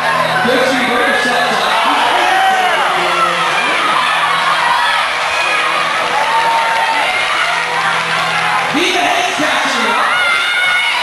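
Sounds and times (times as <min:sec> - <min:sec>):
crowd cheering and whooping: 0:00.0 - 0:11.0
music playing: 0:00.0 - 0:11.0.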